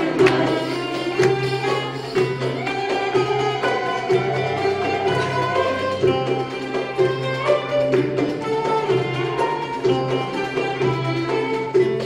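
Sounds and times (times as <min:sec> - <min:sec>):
ensemble with plucked strings and violin: 0:00.0 - 0:12.0.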